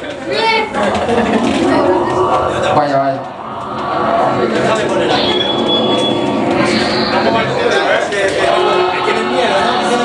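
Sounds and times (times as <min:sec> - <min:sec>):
crowd chatter: 0:00.0 - 0:10.0
thin high whine: 0:00.6 - 0:10.0.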